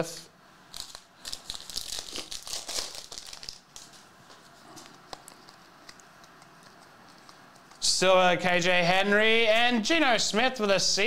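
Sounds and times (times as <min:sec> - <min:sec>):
plastic wrapper tearing and crinkling: 0:00.7 - 0:04.0.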